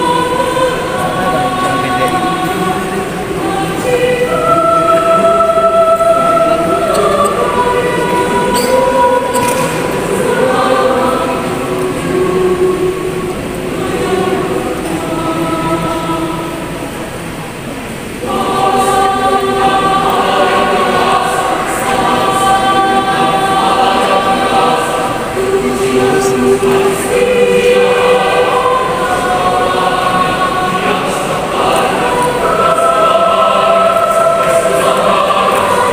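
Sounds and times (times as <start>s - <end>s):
youth choir singing sacred song: 0.0s - 35.9s.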